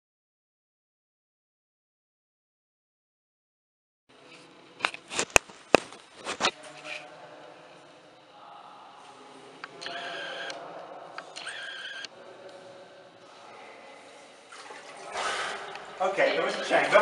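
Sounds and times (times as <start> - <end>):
faint water sounds: 12.1 - 17.0
water gurgles: 13.6 - 17.0.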